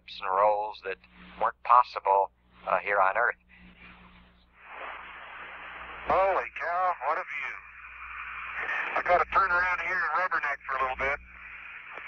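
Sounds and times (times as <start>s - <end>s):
faint low hum: 0.0s - 12.0s
radio channel hiss: 0.0s - 12.0s.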